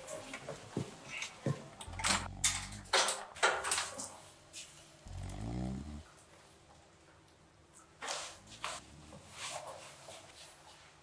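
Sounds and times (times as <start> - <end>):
man snoring: 1.9 - 2.9, 5.1 - 6.0.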